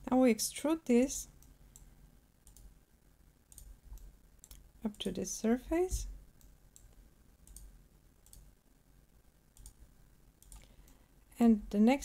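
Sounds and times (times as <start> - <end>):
faint computer mouse clicks: 1.4 - 2.7, 6.4 - 8.5, 9.6 - 9.8, 10.4 - 11.0.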